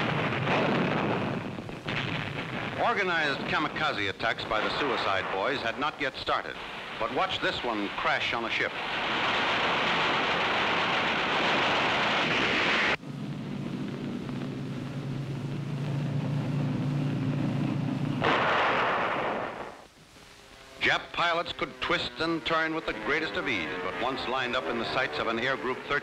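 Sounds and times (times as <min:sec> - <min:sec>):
anti-aircraft fire and explosions: 0:00.0 - 0:19.9
piston plane engine drone: 0:09.4 - 0:18.3, 0:20.5 - 0:26.0.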